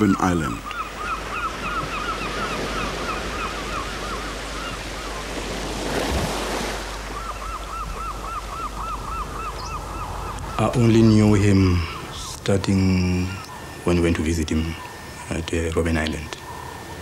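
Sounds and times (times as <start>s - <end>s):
surf washing over rocks: 1.2s - 7.2s.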